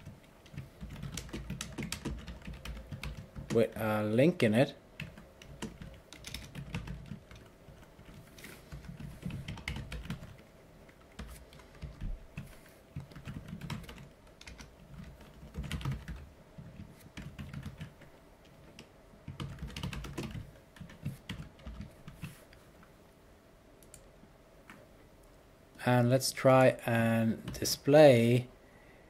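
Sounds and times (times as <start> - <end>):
typing on computer keyboard: 0.0 - 3.6, 5.0 - 22.4.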